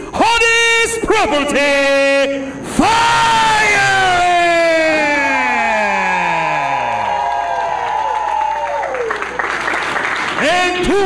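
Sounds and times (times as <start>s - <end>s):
announcer calling through microphone: 0.0s - 6.8s, 10.4s - 11.0s
crowd cheering: 2.8s - 11.0s.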